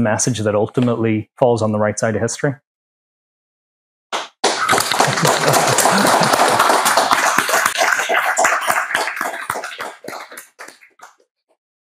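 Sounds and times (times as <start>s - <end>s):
audience applauding: 4.4s - 11.2s.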